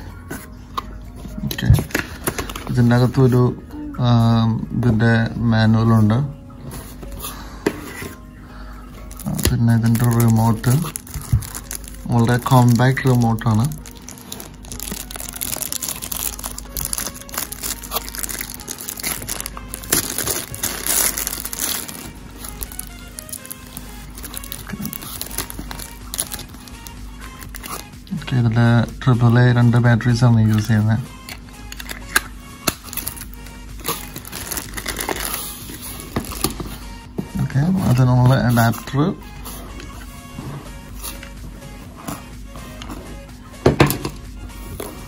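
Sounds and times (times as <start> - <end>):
faint background music: 0.0 - 45.0
plastic bag crinkling: 9.1 - 27.8, 32.8 - 36.6.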